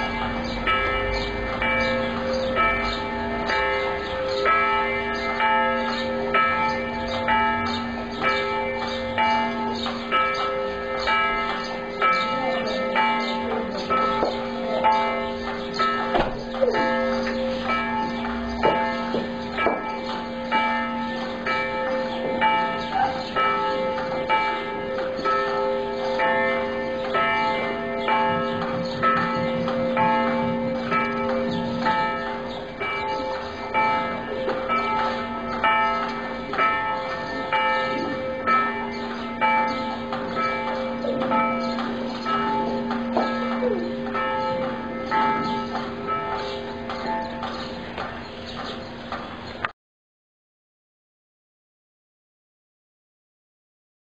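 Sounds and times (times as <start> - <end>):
church bells ringing: 0.0 - 49.7.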